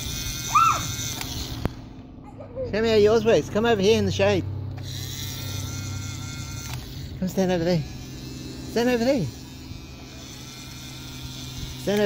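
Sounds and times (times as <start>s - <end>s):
small electric motor humming: 0.0s - 12.0s.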